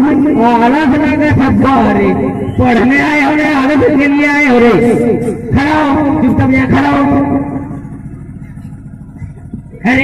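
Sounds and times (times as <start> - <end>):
low steady rumbling: 0.0 - 10.0.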